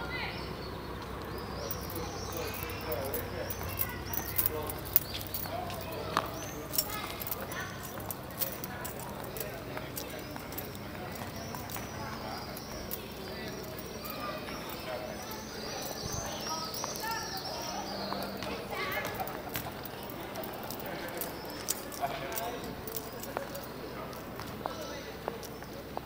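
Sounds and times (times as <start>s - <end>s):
people talking: 0.0s - 26.0s
footsteps on stone paving: 1.0s - 26.0s.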